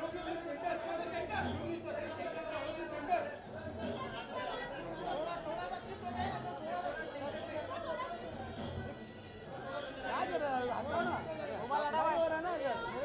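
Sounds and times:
chatter of many people: 0:00.0 - 0:13.0.

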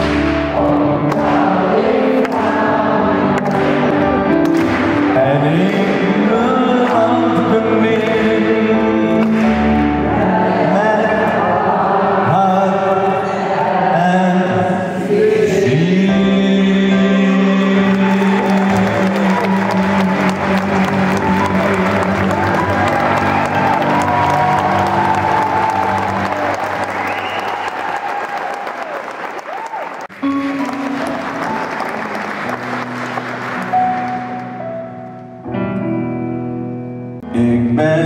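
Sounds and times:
backing track music: 0:00.0 - 0:28.0, 0:30.0 - 0:38.0
audience applause: 0:01.0 - 0:06.1, 0:17.8 - 0:34.7
man singing a long note: 0:05.0 - 0:26.3, 0:37.2 - 0:38.0.

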